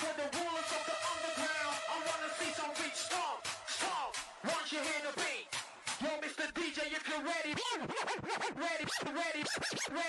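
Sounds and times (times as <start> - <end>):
turntable scratching: 0.0 - 10.0.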